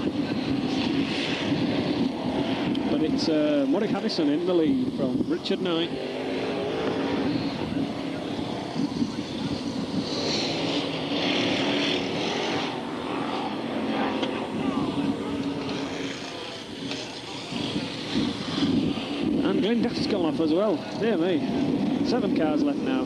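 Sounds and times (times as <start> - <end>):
racing car engines droning: 0.0 - 23.0.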